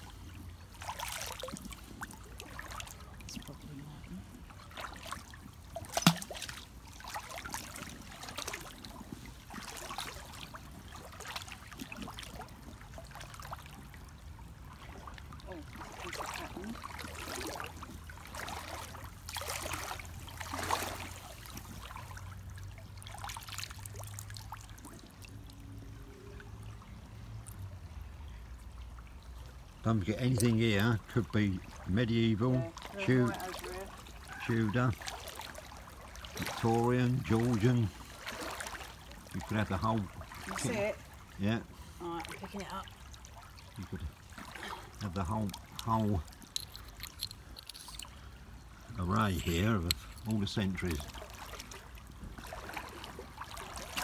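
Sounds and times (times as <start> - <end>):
stream water splashing: 0.0 - 54.0.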